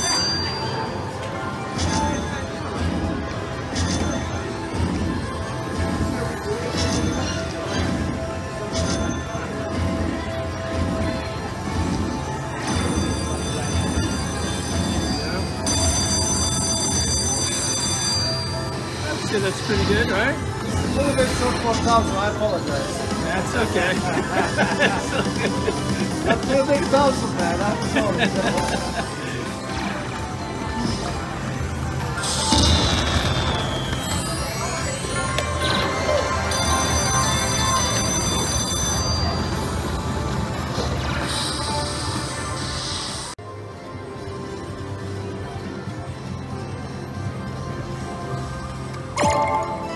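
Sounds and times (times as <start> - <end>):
slot machine win music: 0.0 - 43.4, 45.6 - 49.9
high steady ringing tones: 12.6 - 22.6, 32.0 - 43.4.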